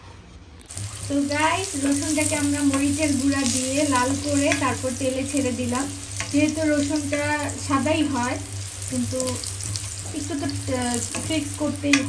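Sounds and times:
steady hum: 0.6 - 12.0
garlic sizzling in hot oil: 0.7 - 12.0.

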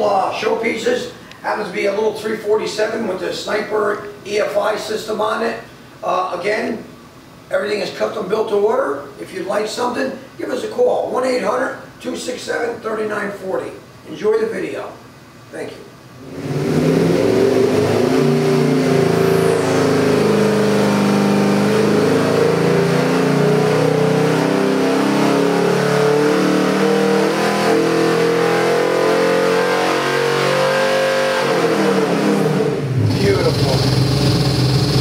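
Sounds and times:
engine revving on dynamometer: 16.2 - 35.0.

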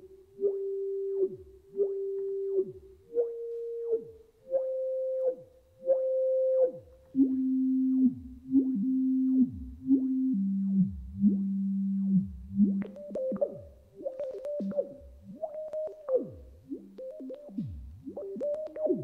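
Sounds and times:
gliding electronic sine tones: 0.0 - 19.0.

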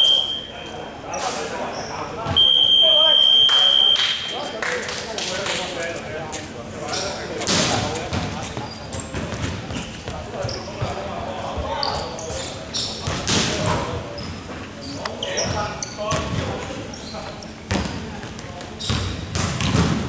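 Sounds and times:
players' voices: 0.0 - 20.0
basketball bouncing on court: 13.0 - 13.5, 17.7 - 20.0.

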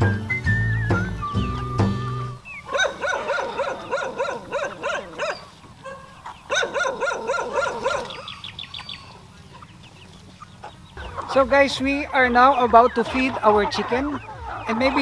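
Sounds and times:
hens calling: 0.6 - 15.0.

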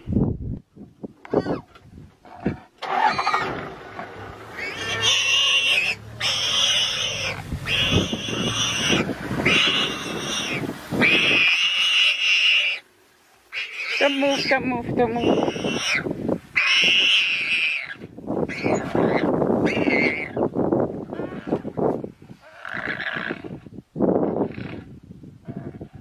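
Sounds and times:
hyenas calling: 2.4 - 12.8, 13.5 - 20.4.

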